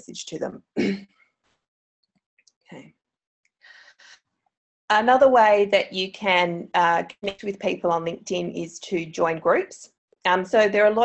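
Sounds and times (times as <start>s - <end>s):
woman breathing in: 3.6s - 4.2s.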